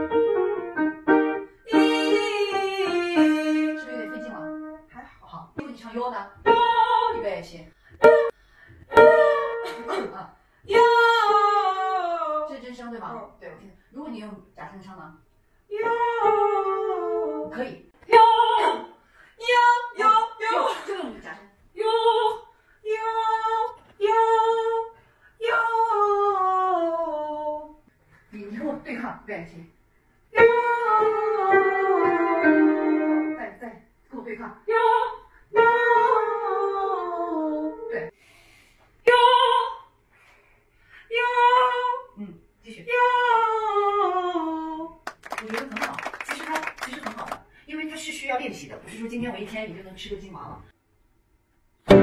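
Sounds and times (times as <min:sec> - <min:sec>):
woman singing vocal warm-up: 0:01.7 - 0:04.6, 0:06.4 - 0:07.3, 0:34.7 - 0:38.1.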